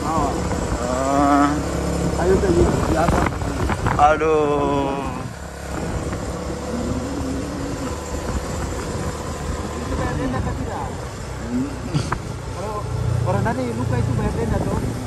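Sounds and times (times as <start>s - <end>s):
wind noise on microphone: 0.0s - 11.1s, 13.4s - 15.0s
motorcycle engine running: 0.0s - 15.0s.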